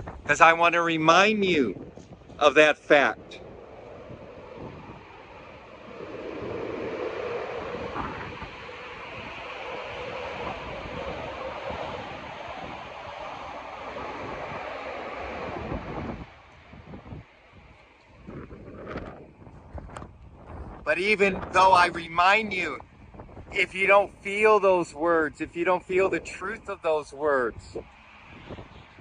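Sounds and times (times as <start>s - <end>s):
wind rushing over microphone: 0.0s - 29.0s.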